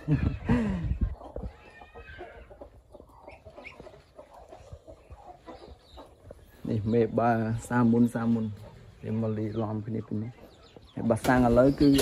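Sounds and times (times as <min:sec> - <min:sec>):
poultry clucking and peeping: 0:00.0 - 0:12.0.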